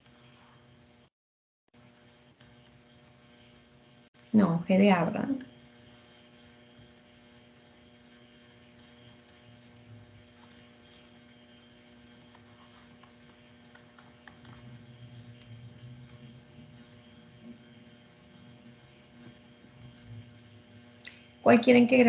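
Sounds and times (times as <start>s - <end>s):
faint electrical hum: 1.8s - 22.0s.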